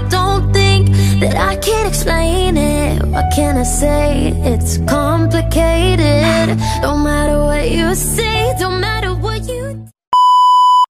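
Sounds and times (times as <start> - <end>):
steady electronic beep: 10.2 - 10.9.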